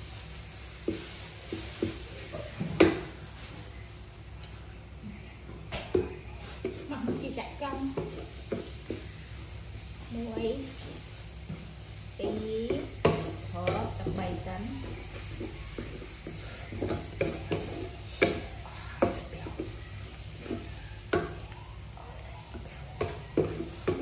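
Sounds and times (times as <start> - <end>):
light frying sizzle: 0.0 - 24.0
wooden spatula scraping metal pot: 10.0 - 21.4, 22.3 - 24.0
spatula knocking on pot: 12.2 - 21.6, 22.5 - 24.0.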